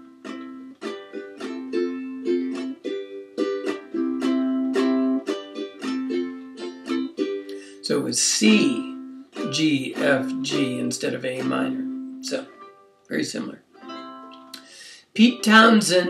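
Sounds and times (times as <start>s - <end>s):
ukulele strumming: 0.0s - 16.0s.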